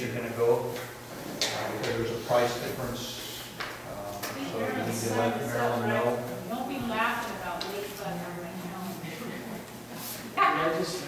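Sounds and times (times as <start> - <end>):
man talking: 0.0 - 0.8, 1.4 - 6.3.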